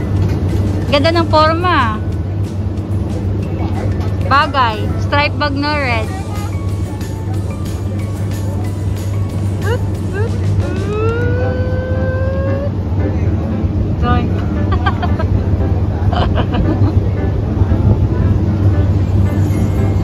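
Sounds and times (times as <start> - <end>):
train low rumble: 0.0 - 20.0.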